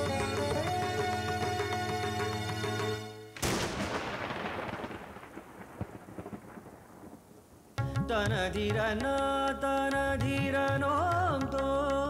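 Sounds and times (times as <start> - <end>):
music: 0.0 - 3.4, 7.8 - 12.0
thunderclap rumbling: 3.4 - 7.8.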